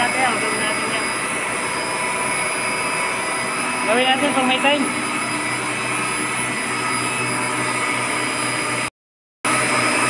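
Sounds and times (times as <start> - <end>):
high-pitched whining tones: 0.0 - 8.9
machine drone of pumps: 0.0 - 8.9, 9.5 - 10.0.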